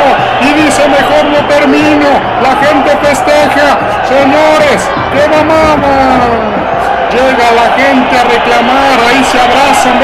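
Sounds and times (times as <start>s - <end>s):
crowd noise: 0.0s - 10.0s
man commentating: 0.0s - 10.0s.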